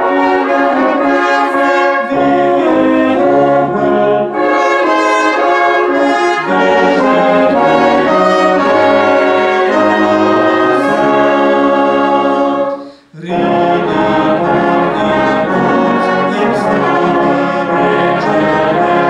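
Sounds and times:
brass band playing a hymn: 0.0 - 19.0.

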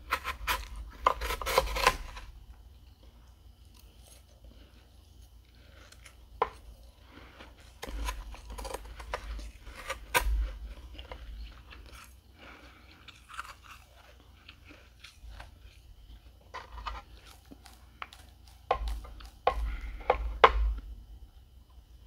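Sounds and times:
crunching and chewing frost: 0.0 - 20.9.

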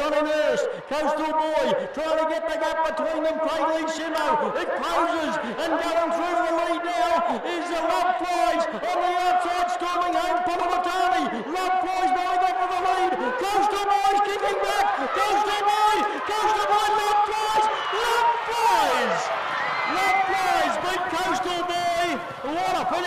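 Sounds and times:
man commentating a horse race: 0.0 - 23.0.

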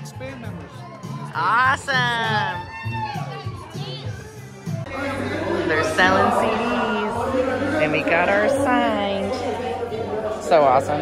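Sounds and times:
audience shouting and singing along: 0.0 - 10.5.

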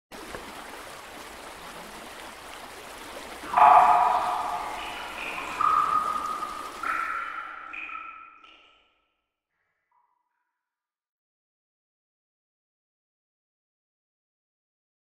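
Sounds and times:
ping-like tones: 3.5 - 8.4.

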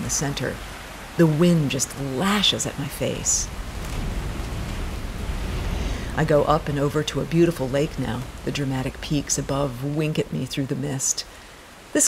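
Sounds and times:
gusting wind on microphone: 0.0 - 12.0.

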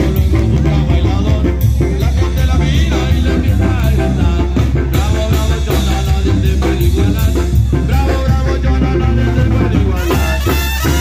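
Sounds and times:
band playing dance music: 0.0 - 11.0.

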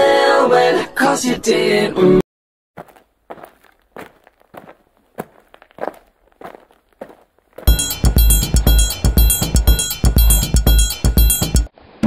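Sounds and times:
person singing: 0.0 - 2.2
soft footsteps: 2.8 - 7.7
loud music with drum beat: 7.7 - 11.7.

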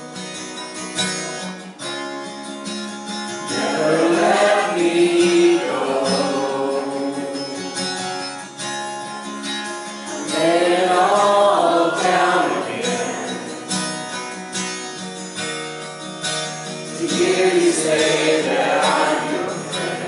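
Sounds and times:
acoustic guitar strummed: 0.0 - 20.0
women singing: 3.5 - 8.0, 10.1 - 13.7, 17.0 - 20.0.

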